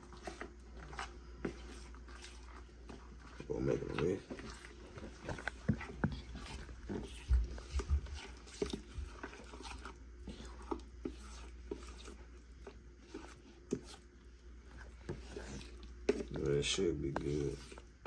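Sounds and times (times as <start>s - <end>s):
spatula stirring wet mush: 0.0s - 18.0s.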